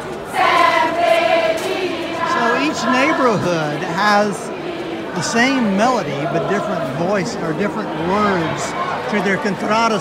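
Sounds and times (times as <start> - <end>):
crowd singing together: 0.0 - 10.0.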